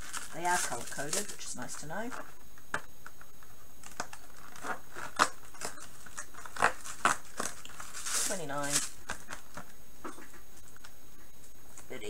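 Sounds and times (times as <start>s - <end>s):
cardboard crackling and tearing: 0.0s - 2.2s, 3.8s - 9.6s.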